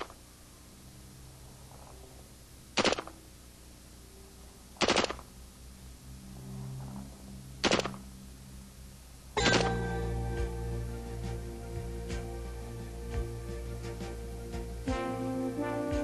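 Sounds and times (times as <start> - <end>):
rifle firing automatic bursts: 2.8 - 3.1, 4.8 - 5.2, 7.6 - 8.0
music: 9.4 - 16.0.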